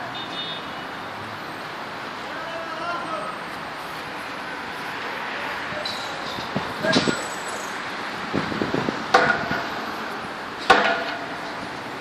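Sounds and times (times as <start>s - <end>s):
cars passing on a road: 0.0s - 12.0s.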